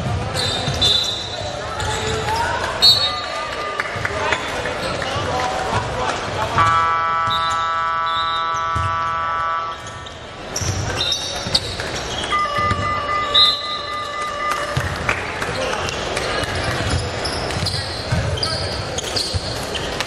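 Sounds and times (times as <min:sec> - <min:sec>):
long multi-toned sounds: 0:06.6 - 0:09.8, 0:12.3 - 0:15.3
basketball bouncing on hardwood: 0:12.5 - 0:12.9.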